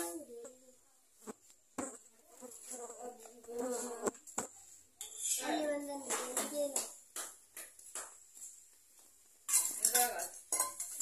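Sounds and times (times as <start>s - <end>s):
fly buzzing: 1.2s - 4.6s.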